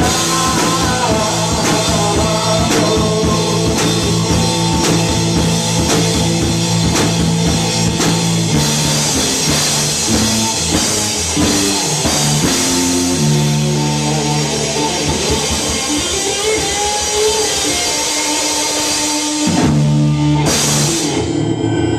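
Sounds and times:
drum kit steady beat: 0:00.0 - 0:21.3
electric guitars sustained notes: 0:00.0 - 0:21.9.

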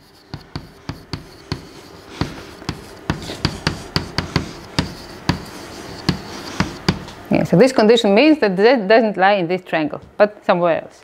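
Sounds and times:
chalk tapping on blackboard: 0:00.0 - 0:07.2
faint chalk scraping: 0:00.0 - 0:07.2.

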